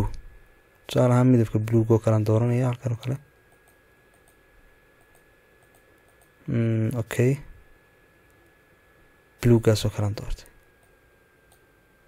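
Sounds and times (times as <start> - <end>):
person speaking: 0.0 - 0.3, 0.9 - 3.3, 6.4 - 7.6, 9.4 - 10.6
faint steady whine: 0.0 - 12.0
computer mouse click: 3.4 - 4.4, 5.0 - 6.4, 10.6 - 11.7.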